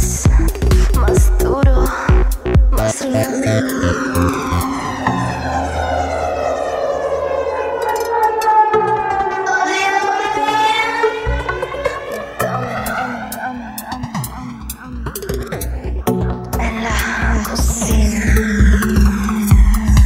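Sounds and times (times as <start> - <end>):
electronic dance music: 0.0 - 20.0
held bass notes: 0.0 - 20.0
sweeping synth effect: 2.4 - 20.0.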